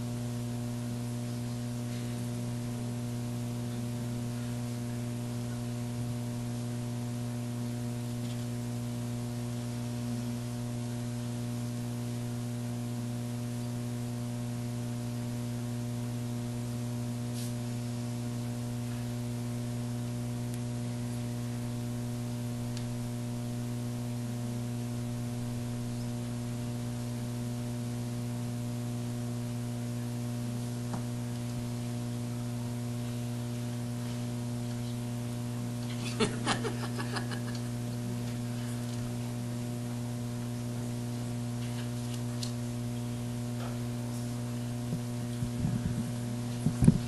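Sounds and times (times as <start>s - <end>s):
electrical mains hum: 0.0s - 47.0s
light hiss: 17.2s - 18.0s.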